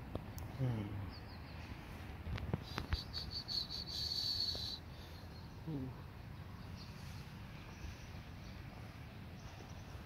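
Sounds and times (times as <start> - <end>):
cricket chirping: 2.7 - 4.8.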